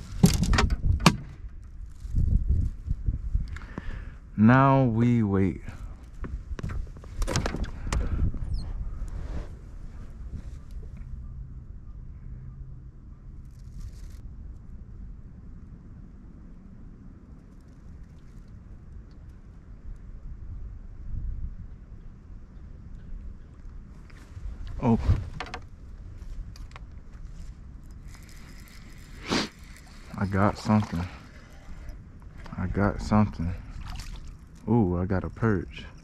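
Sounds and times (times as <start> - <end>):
wind buffeting microphone: 0.0 - 4.4, 5.5 - 11.9, 17.9 - 36.0.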